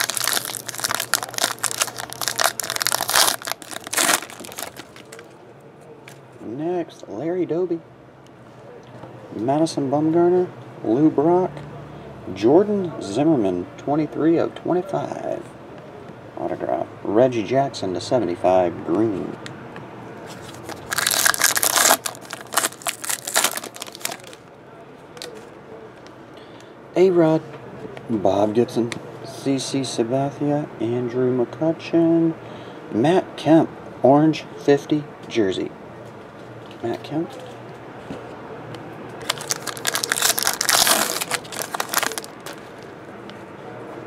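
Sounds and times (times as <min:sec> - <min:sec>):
card handling: 0:00.0 - 0:05.3, 0:20.3 - 0:24.4, 0:39.2 - 0:42.9
foil wrapper ripping: 0:00.0 - 0:05.3, 0:20.4 - 0:24.4, 0:39.2 - 0:42.9
wrapper crackling: 0:00.0 - 0:05.3, 0:20.4 - 0:24.4, 0:39.2 - 0:42.9.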